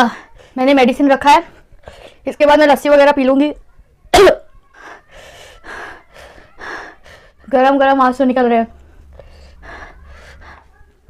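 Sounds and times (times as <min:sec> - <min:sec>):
woman breathing hard: 0:04.7 - 0:07.5, 0:08.7 - 0:10.8.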